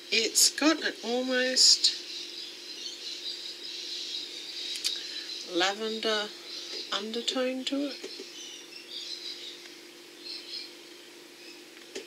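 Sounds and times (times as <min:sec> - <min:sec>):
birds chirping faintly: 0:00.0 - 0:12.0
steady low hum: 0:00.0 - 0:12.0.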